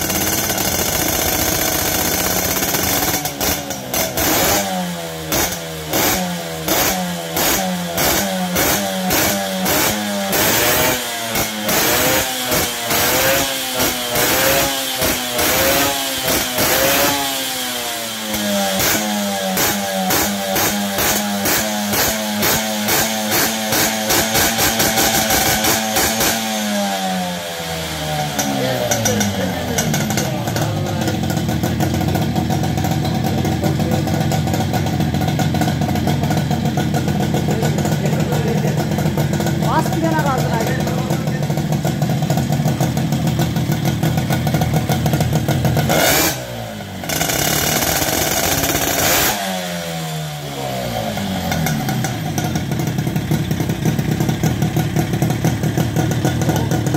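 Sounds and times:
moped engine idling: 0.0s - 56.9s.

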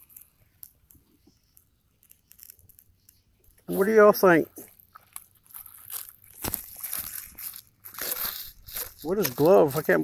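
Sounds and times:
plastic glove crinkling: 0.0s - 10.0s.

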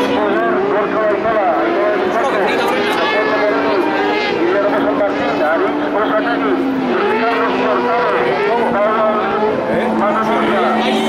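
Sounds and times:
people talking: 0.0s - 11.0s
racing buggy engines running: 0.0s - 11.0s.

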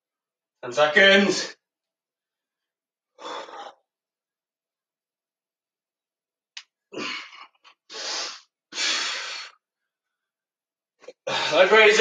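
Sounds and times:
man breathing hard: 3.2s - 3.9s, 7.0s - 9.6s, 11.2s - 11.7s.

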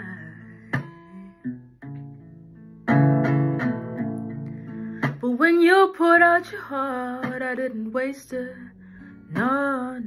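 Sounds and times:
acoustic guitar playing: 0.0s - 10.0s.

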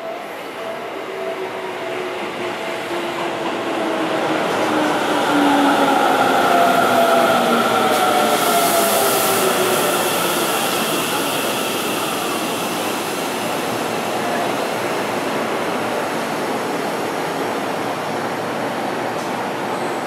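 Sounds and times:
train rolling noise: 0.0s - 20.0s.

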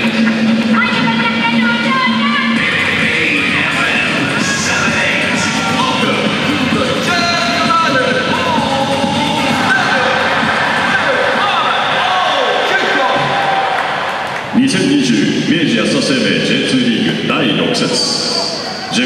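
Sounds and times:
voice over music: 0.0s - 13.2s
music over public-address system: 0.0s - 13.4s.

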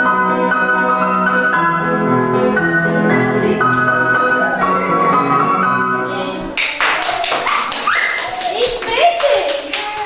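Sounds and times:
keyboard music: 0.0s - 6.5s
hands clapping in rhythm: 6.6s - 10.0s.

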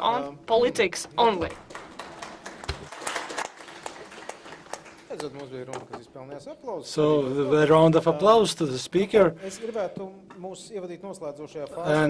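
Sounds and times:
audience applauding: 1.4s - 5.8s.

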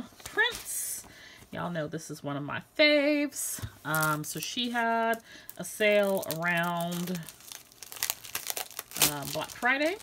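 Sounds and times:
packaging crinkling and rustling: 3.9s - 10.0s.

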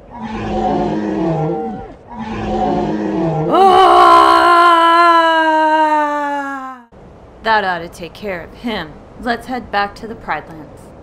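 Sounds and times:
person's long drawn-out cry: 3.5s - 6.9s.

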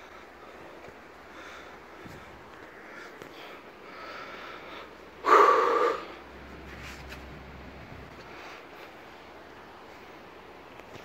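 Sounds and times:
heavy breath out: 1.3s - 6.2s.

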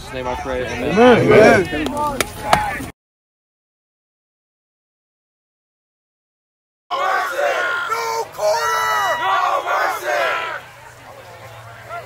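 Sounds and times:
team yelling group cheer: 6.9s - 10.7s.

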